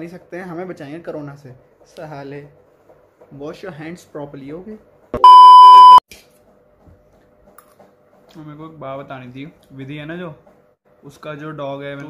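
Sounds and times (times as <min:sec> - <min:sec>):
loud steady test tone beep: 0:05.2 - 0:06.0.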